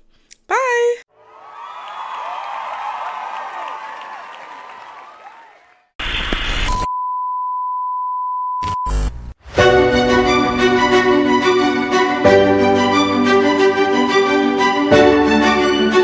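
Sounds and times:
crowd cheering and applauding: 1.1s - 6.0s.

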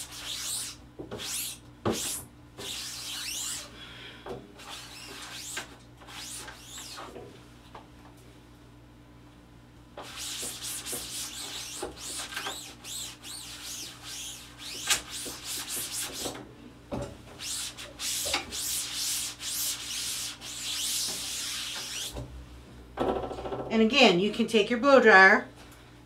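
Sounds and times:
rag rubbing on screen mesh: 0.0s - 3.7s, 4.6s - 7.1s, 10.0s - 16.4s, 17.4s - 22.2s.

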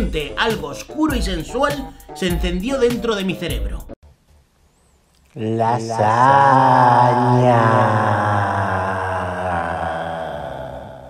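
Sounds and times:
deep chanted voice: 5.3s - 11.0s.

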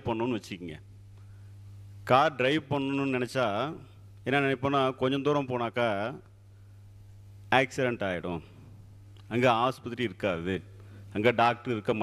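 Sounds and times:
man talking into microphone: 0.0s - 0.9s, 2.1s - 6.3s, 7.5s - 8.5s, 9.3s - 12.0s
steady low hum: 0.0s - 12.0s.

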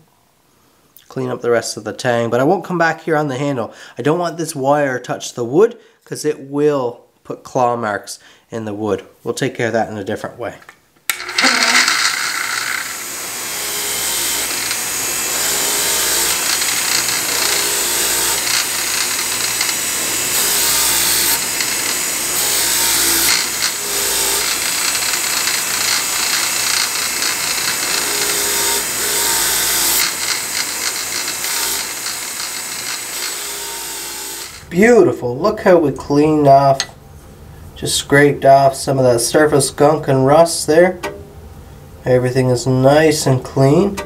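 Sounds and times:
grinder motor hum: 11.1s - 34.7s.

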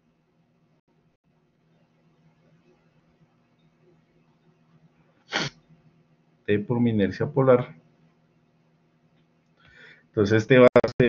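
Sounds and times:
sharp burst of breath: 5.3s - 5.6s.

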